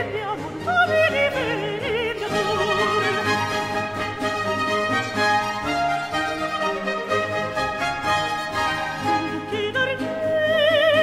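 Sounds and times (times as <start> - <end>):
countertenor singing opera aria: 0.0 - 5.4, 8.2 - 11.0
orchestra accompaniment: 0.0 - 11.0.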